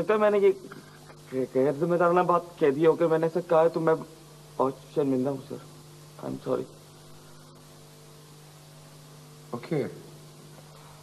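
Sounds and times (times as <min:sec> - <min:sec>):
faint electrical hum: 0:00.0 - 0:11.0
low hiss: 0:00.0 - 0:11.0.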